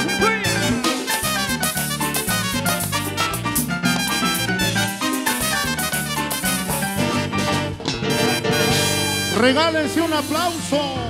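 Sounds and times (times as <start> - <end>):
saxophone and brass section: 0.0 - 10.6
drum kit and timbales: 0.0 - 11.0
live dance band playing: 0.0 - 11.0.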